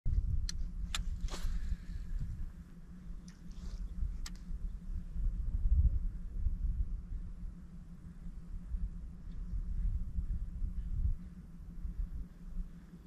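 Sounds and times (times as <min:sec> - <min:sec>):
wind rumble on microphone: 0:00.0 - 0:13.0.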